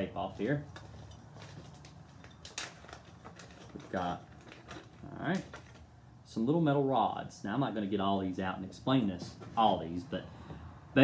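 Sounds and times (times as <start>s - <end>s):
faint handling noises: 0.2s - 6.0s, 8.6s - 10.7s.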